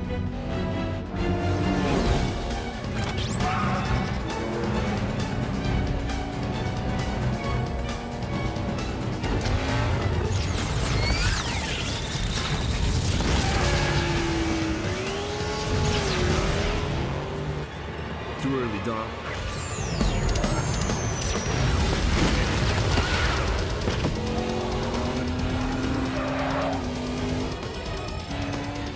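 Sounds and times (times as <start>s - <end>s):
film music: 0.0s - 28.9s
car engines revving: 1.0s - 28.9s.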